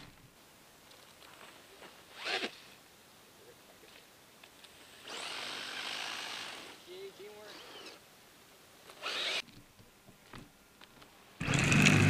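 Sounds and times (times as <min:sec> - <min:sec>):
electric motor whining: 0:09.0 - 0:09.4, 0:11.4 - 0:12.0
tyres churning snow: 0:11.4 - 0:12.0.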